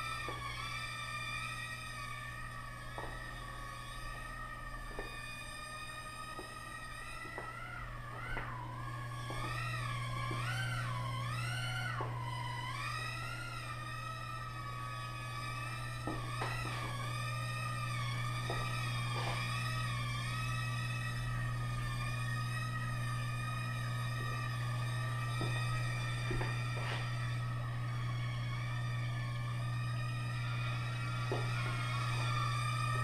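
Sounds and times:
constant low hum: 0.0s - 33.0s
quadcopter propellers whining: 0.0s - 33.0s.

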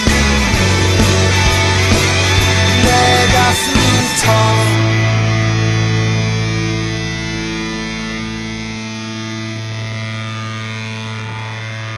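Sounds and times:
electric guitar chord ringing: 0.0s - 11.9s.

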